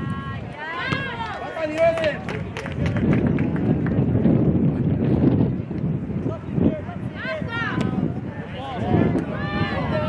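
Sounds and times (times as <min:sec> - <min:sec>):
people shouting on field: 0:00.1 - 0:02.2, 0:06.9 - 0:10.0.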